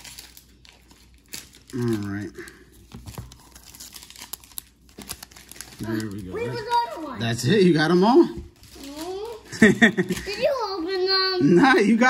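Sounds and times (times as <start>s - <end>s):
wrapper crinkling and tearing: 0.0s - 7.4s, 8.5s - 10.9s.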